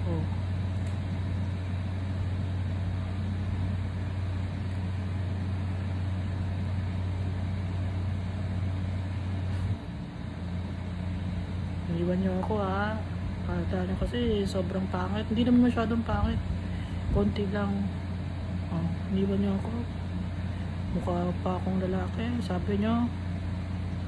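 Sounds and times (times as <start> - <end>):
low machine hum: 0.0 - 24.0.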